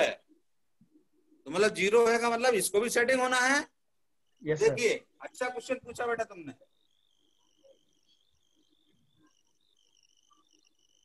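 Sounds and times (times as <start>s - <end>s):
faint insect chirring: 2.7s - 11.0s.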